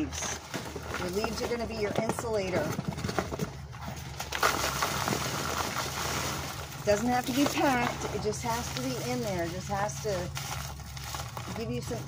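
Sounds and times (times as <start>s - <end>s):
dry leaves pouring into a box: 4.2s - 12.0s.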